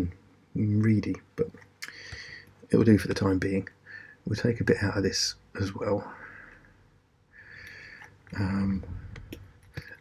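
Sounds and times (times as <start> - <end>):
soft breathing: 1.8 - 2.6, 3.8 - 4.3, 6.0 - 10.0.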